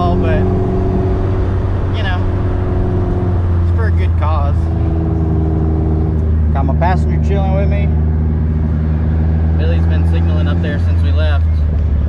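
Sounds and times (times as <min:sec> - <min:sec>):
car engine cruising drone: 0:00.0 - 0:12.0
person speaking: 0:09.6 - 0:11.4.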